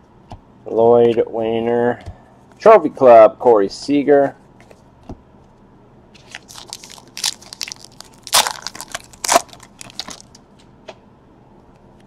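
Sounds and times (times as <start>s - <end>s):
wrapper crinkling and tearing: 6.2s - 10.4s.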